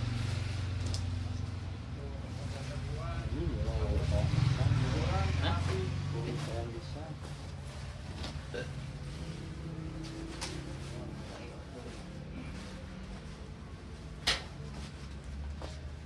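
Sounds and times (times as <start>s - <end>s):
clothes being handled: 5.6s - 16.0s.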